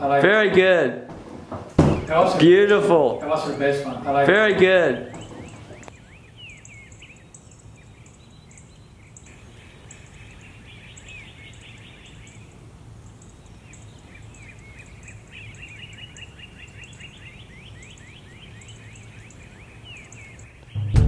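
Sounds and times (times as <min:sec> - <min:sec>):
small birds chirping: 0:00.0 - 0:21.0
faint high chirping: 0:05.0 - 0:21.0.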